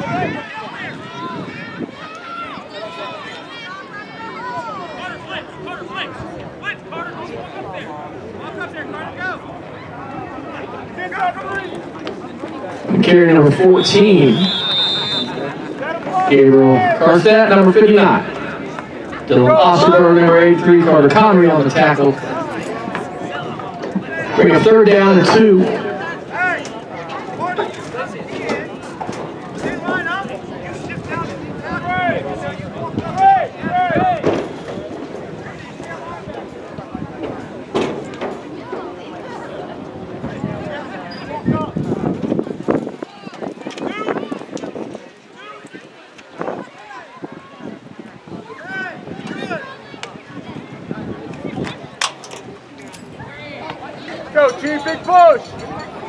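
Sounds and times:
people talking and calling out: 0:00.0 - 0:56.0
spectators murmuring: 0:00.0 - 0:56.0.

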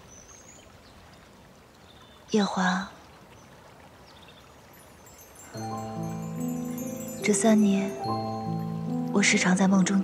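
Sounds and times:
trickling water: 0:00.0 - 0:10.0.

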